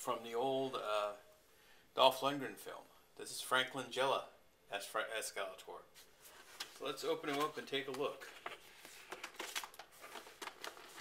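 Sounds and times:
plastic packaging crinkling: 0:08.4 - 0:11.0.

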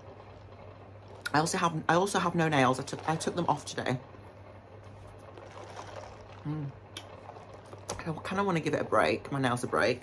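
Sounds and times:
low steady hum: 0:00.0 - 0:10.0
sipping through a plastic straw: 0:05.2 - 0:08.0.

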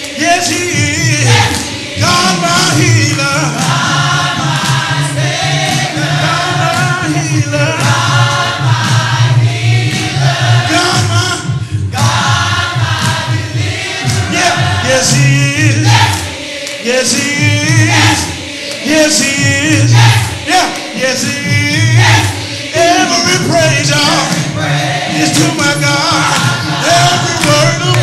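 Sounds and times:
group singing gospel: 0:00.0 - 0:28.0.

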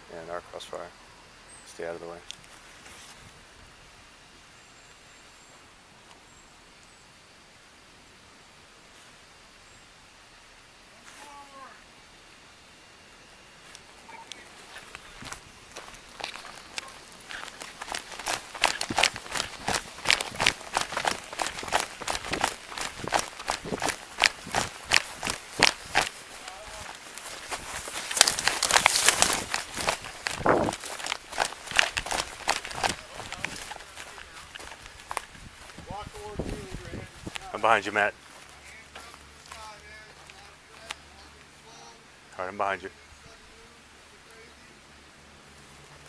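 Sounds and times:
footsteps walking briskly: 0:14.5 - 0:40.9.

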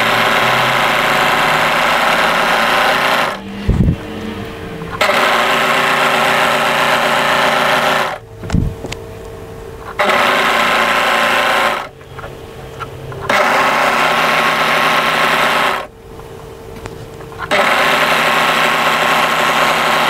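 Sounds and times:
overlocker stitching fabric: 0:00.0 - 0:03.9, 0:04.9 - 0:08.2, 0:09.9 - 0:12.0, 0:13.2 - 0:15.9, 0:17.4 - 0:20.0
quiet machine hum: 0:00.0 - 0:20.0.

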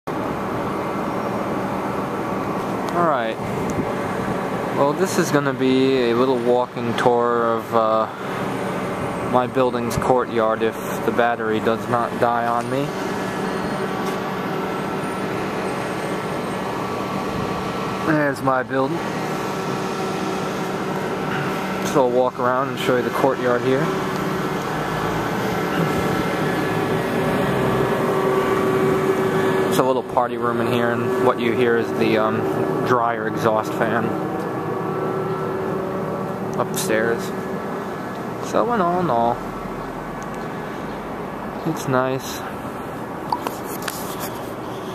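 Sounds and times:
low hum: 0:00.1 - 0:43.8
exhaust fan air rush: 0:00.1 - 0:44.9.

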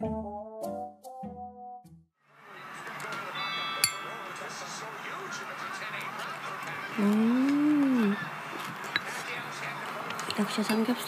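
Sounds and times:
high bright chime: 0:03.4 - 0:04.9.

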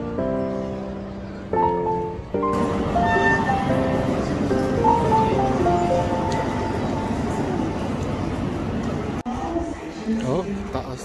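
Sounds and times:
held melody notes: 0:00.0 - 0:08.1
crowd noise in echoing hall: 0:00.0 - 0:11.0.

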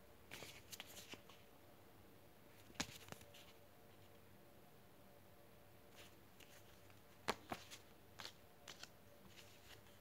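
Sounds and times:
paper card booklet rustling: 0:00.3 - 0:01.4, 0:02.6 - 0:03.6, 0:05.9 - 0:10.0.

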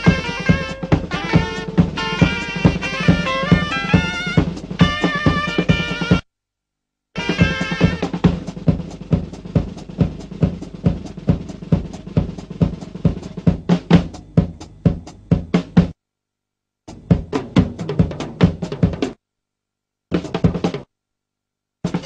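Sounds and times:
drum kit solo: 0:00.0 - 0:06.3, 0:07.2 - 0:16.0, 0:16.9 - 0:19.2, 0:20.1 - 0:20.9.

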